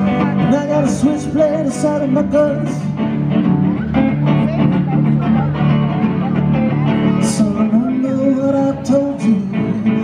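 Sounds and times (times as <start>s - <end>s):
country blues guitar through pa: 0.0s - 10.0s
person singing: 6.9s - 10.0s.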